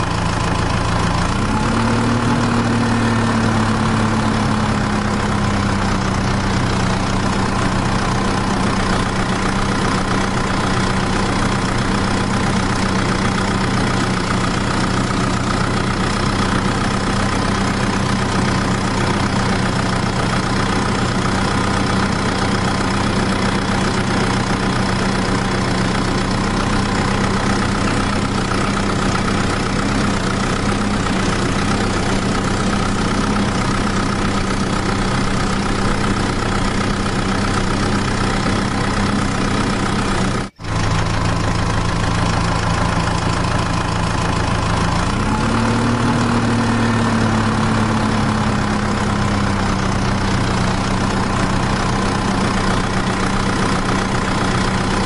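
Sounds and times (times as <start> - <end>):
engine idling: 0.0 - 55.0.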